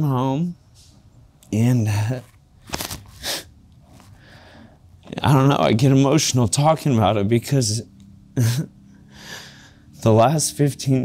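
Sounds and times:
man breathing sharply: 0:03.2 - 0:04.9, 0:08.9 - 0:10.0.

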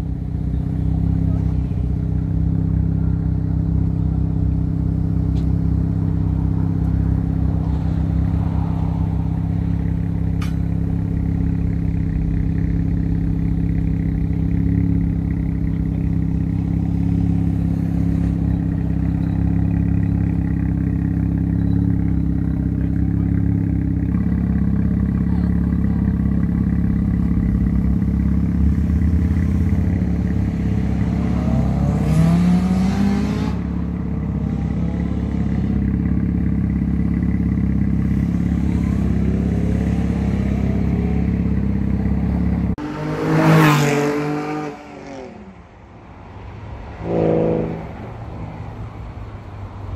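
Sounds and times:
car engines idling: 0:00.0 - 0:43.1, 0:47.8 - 0:49.9
car accelerating away: 0:16.8 - 0:37.4.

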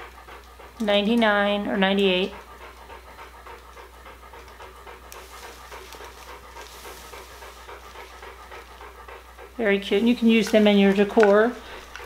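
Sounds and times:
rhythmic panting breaths: 0:00.0 - 0:12.0.

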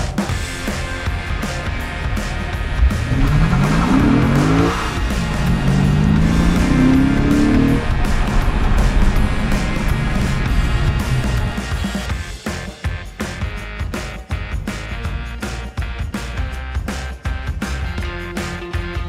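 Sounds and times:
background music with drums: 0:00.0 - 0:19.0
car engine accelerating hard: 0:02.6 - 0:12.1.

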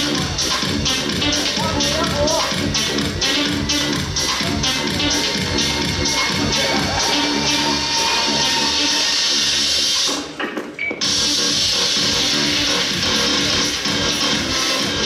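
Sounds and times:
loud music playing: 0:00.0 - 0:15.0.

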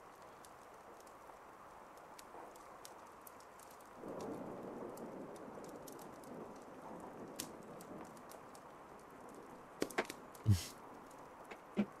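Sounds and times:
soft rain patter: 0:00.0 - 0:12.0.

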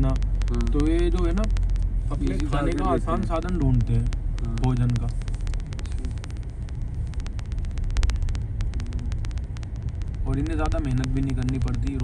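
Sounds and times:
car engine and road rumble: 0:00.0 - 0:12.0
sharp irregular clicks: 0:00.0 - 0:12.0.

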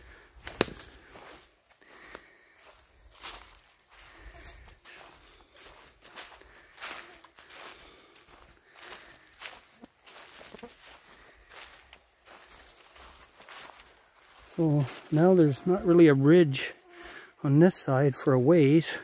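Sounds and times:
footsteps on forest trail: 0:00.0 - 0:19.0.

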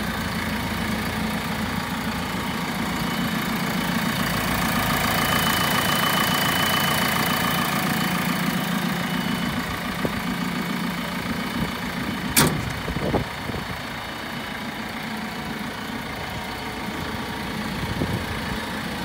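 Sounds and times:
diesel engine idling: 0:00.0 - 0:19.0
engine cover slamming shut: 0:12.2 - 0:13.2
light clunk: 0:12.3 - 0:12.9.

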